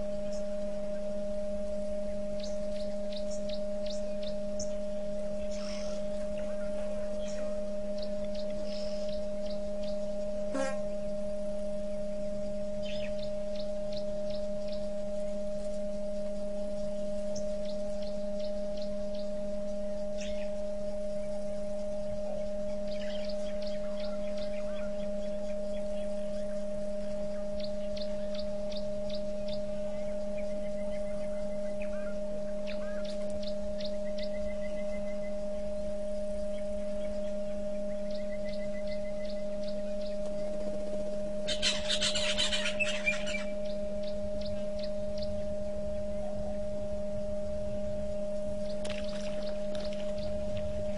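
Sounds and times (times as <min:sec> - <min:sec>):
electrical hum: 0:00.0 - 0:50.9.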